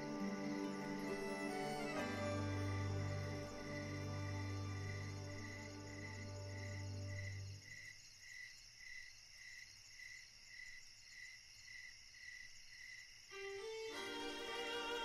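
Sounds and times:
soft music: 0:00.0 - 0:07.7, 0:13.3 - 0:15.0
cricket chirping: 0:00.0 - 0:15.0.

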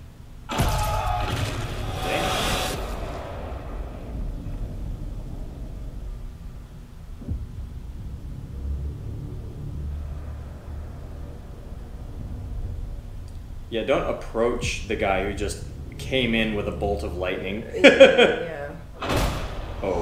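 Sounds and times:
deep low rumble: 0:00.0 - 0:20.0
loud cinematic hit: 0:00.4 - 0:20.0.

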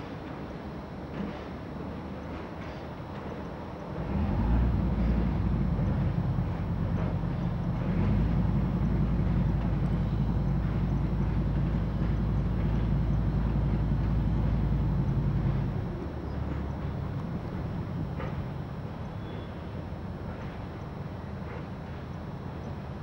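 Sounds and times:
gondola machinery humming: 0:00.0 - 0:23.0.

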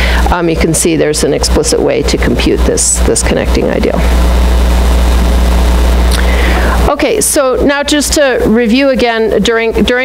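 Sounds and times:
loud low hum: 0:01.0 - 0:07.8.

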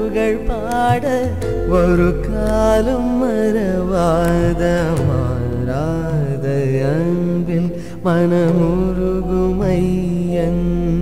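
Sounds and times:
person singing devotional song: 0:00.0 - 0:11.0.

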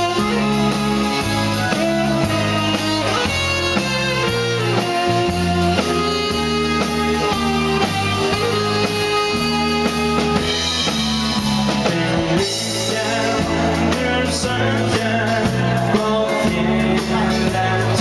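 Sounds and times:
saxophone melody: 0:00.0 - 0:13.9
dance band playing: 0:00.0 - 0:18.0.

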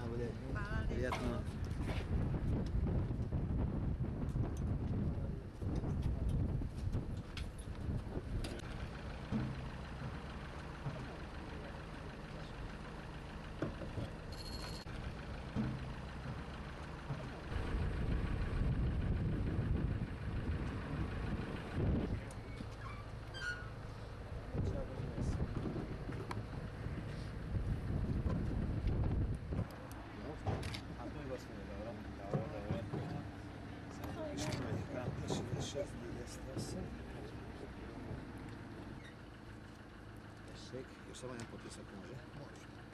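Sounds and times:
truck engine idling: 0:00.0 - 0:42.9
wind buffeting microphone: 0:00.7 - 0:08.7, 0:17.5 - 0:22.8, 0:24.3 - 0:29.7.

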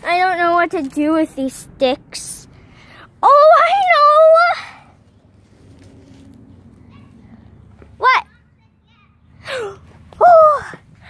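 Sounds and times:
child's high vocal sound: 0:09.4 - 0:11.0.

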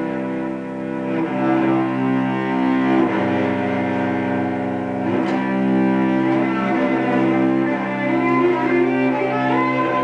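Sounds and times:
cello bowed long notes: 0:00.0 - 0:10.0.

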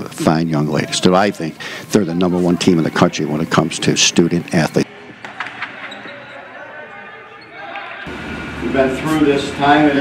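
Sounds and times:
faint players' voices: 0:00.0 - 0:10.0.

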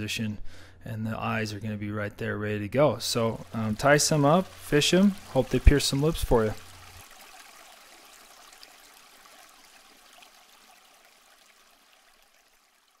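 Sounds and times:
faint hiss: 0:03.0 - 0:13.0.

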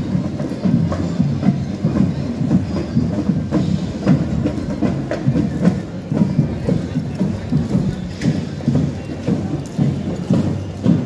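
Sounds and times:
parade drums marching beat: 0:00.0 - 0:11.0.

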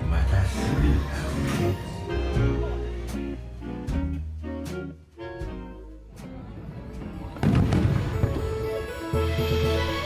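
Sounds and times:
firework boom with crackling: 0:06.6 - 0:09.2.

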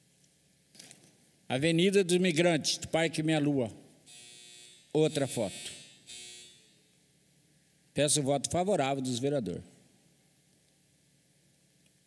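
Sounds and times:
faint buzz with steady tones: 0:04.0 - 0:08.0.

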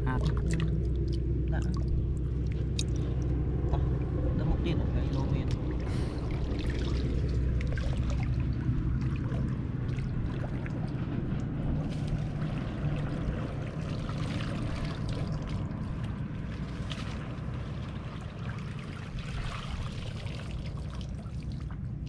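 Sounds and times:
water sloshing around legs: 0:00.0 - 0:22.0
basket scooping through water: 0:05.0 - 0:21.7.

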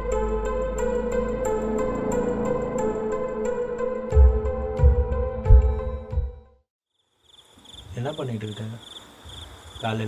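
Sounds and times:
crickets chirping: 0:06.9 - 0:10.0.

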